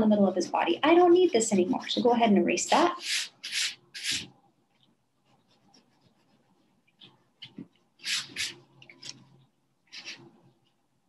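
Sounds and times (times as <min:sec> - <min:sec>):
eraser rubbing on paper: 0:02.7 - 0:04.4, 0:05.3 - 0:06.8, 0:07.4 - 0:08.7, 0:09.9 - 0:10.3.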